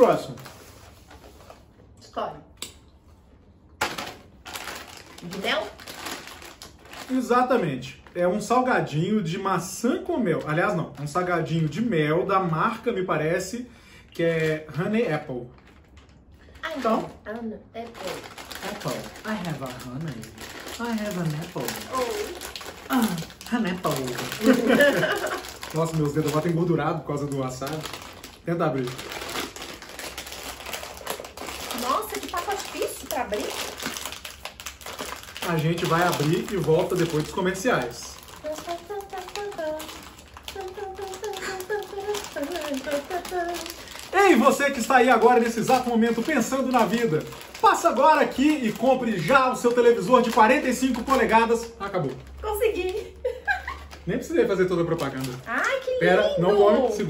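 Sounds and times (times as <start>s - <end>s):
plastic bags crinkling: 0.0s - 1.8s, 3.8s - 12.8s, 14.3s - 57.0s.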